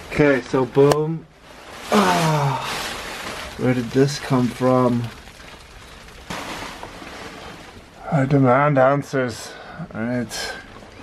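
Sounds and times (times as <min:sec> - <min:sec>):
heavy rain on bus roof: 0:00.0 - 0:11.0.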